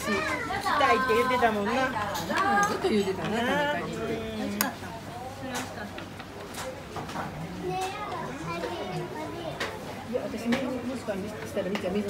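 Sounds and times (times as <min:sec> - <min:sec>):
child's voice: 0:00.0 - 0:01.1, 0:07.6 - 0:09.8.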